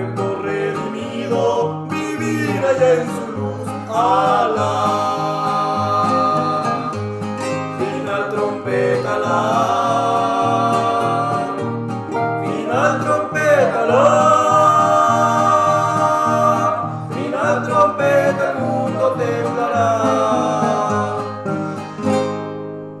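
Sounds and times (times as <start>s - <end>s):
voices singing long notes: 0.0s - 21.8s
acoustic guitars strumming: 0.0s - 23.0s.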